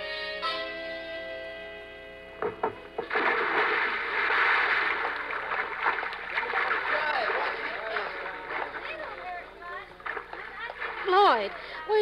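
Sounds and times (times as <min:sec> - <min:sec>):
water splashing: 0:03.0 - 0:12.0.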